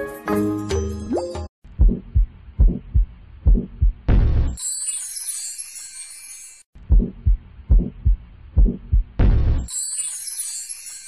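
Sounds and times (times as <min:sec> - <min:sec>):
heartbeat double thump: 0:01.7 - 0:04.5, 0:06.8 - 0:09.6.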